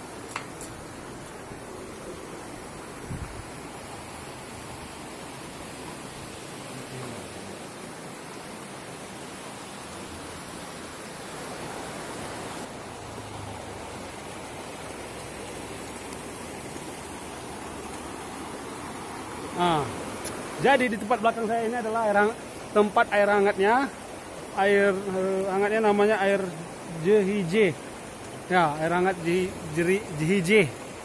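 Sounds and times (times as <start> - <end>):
river water rushing: 0.0 - 31.0.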